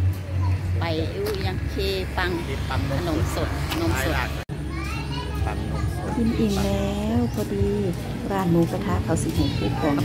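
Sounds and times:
low street noise rumble: 0:00.0 - 0:10.0
woman speaking: 0:00.8 - 0:04.4, 0:06.4 - 0:10.0
children's voices: 0:04.6 - 0:06.4.

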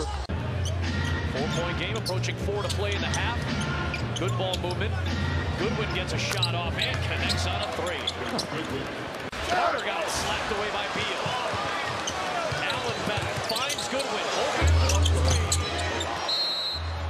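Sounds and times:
crowd noise and voices: 0:00.0 - 0:17.0.

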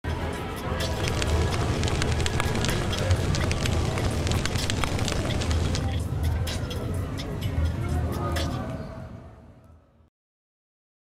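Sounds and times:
fire crackling: 0:00.8 - 0:06.0.

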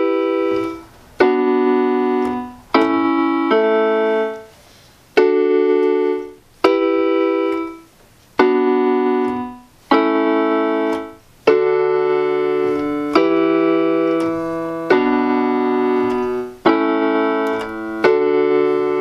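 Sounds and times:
piano chords on keyboard: 0:00.0 - 0:19.0.

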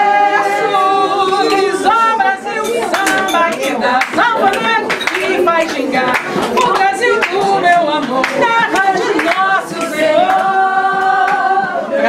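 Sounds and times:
voices singing without instruments: 0:00.0 - 0:12.0.

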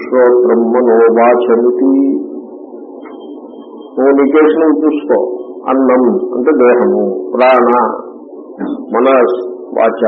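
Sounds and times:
faint high whine: 0:00.0 - 0:10.0.

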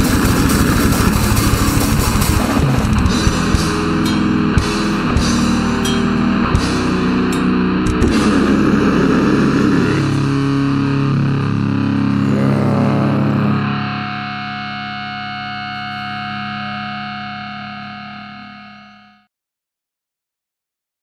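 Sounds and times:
distorted metal guitars: 0:00.0 - 0:19.3
guitar feedback tones: 0:00.0 - 0:19.3.

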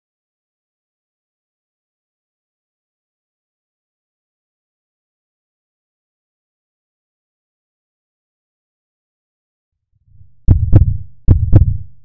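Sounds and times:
heartbeat thump: 0:10.2 - 0:12.0.

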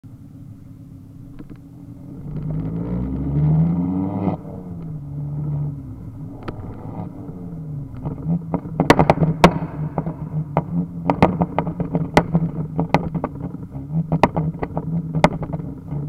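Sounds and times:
exhaust crackle: 0:00.0 - 0:16.0
car engine revving: 0:00.5 - 0:16.0
exhaust pop: 0:01.2 - 0:16.0.

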